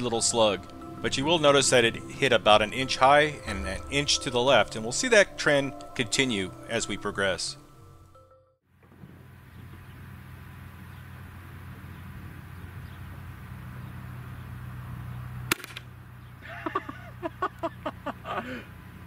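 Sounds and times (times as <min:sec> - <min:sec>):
shotgun shot: 0:15.5 - 0:15.9.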